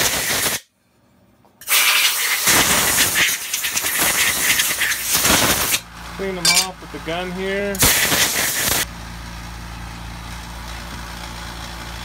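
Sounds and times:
compressed air blow gun hissing: 7.8 - 8.8.

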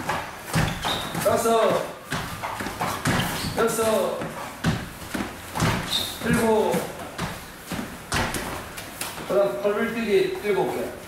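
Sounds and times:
thumps on rubber gym mat: 0.0 - 9.3.

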